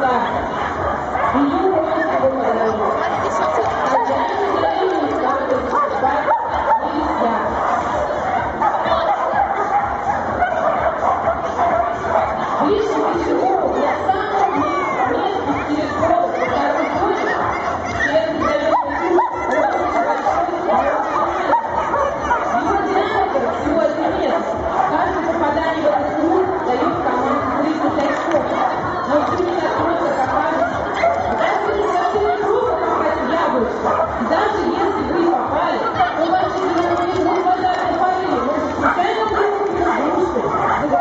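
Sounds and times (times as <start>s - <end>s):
crowd chatter: 0.0s - 41.0s
dog yipping and barking: 14.3s - 22.6s, 30.6s - 37.6s, 38.8s - 41.0s.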